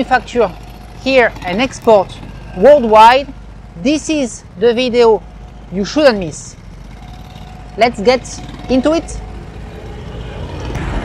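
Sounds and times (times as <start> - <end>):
scooter engine and road rumble: 0.0 - 11.0.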